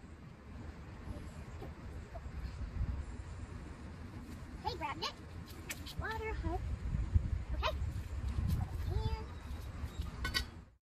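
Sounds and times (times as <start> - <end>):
steady low rumble: 0.0 - 10.8.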